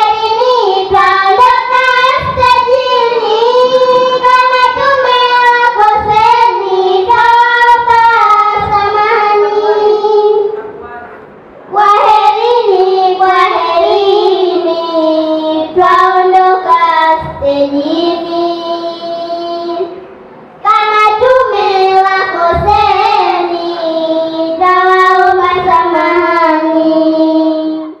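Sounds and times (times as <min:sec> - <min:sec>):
girls singing into microphones: 0:00.0 - 0:10.8, 0:11.6 - 0:28.0.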